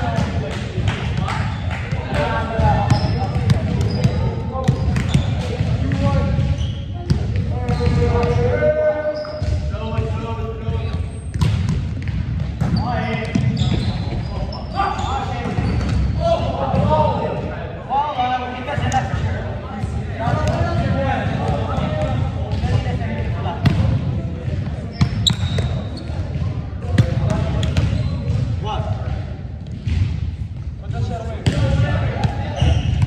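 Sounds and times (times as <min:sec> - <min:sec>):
players talking and calling out: 0:00.0 - 0:33.0
volleyball bouncing on wooden floor: 0:11.3 - 0:13.8.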